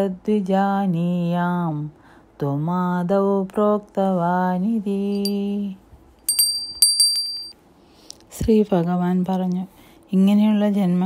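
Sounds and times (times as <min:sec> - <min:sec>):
small high-pitched bell struck: 0:05.2 - 0:05.4, 0:06.3 - 0:07.5.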